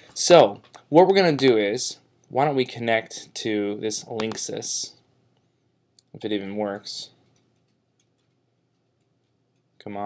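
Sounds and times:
computer mouse clicks: 7.2s - 9.7s.

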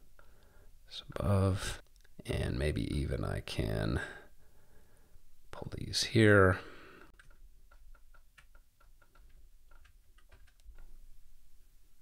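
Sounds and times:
computer mouse clicks: 7.1s - 10.9s.

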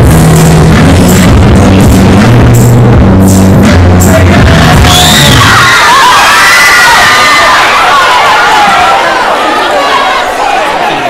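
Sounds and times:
loud music with heavy bass: 0.0s - 7.4s
crowd cheering and screaming: 4.4s - 11.0s.

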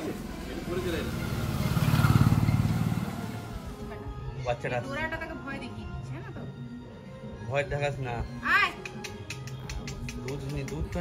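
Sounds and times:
vehicle engine passing: 0.0s - 3.9s.

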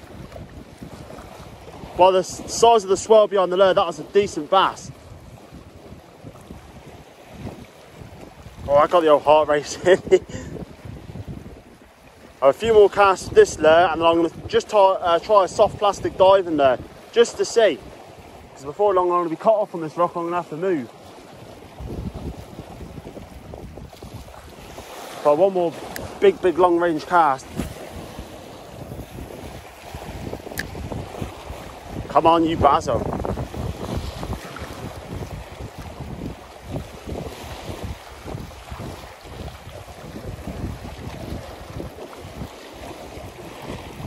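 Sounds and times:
sea water washing around rocks: 0.0s - 44.0s
wind buffeting microphone: 0.0s - 44.0s.

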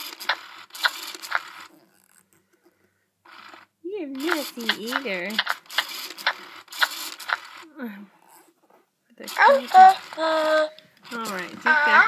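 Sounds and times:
sharp plastic clicks: 0.0s - 1.7s, 4.2s - 7.6s.

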